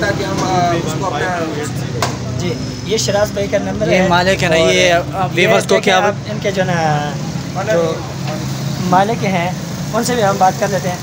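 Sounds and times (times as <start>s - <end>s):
man speaking: 0.0s - 8.2s.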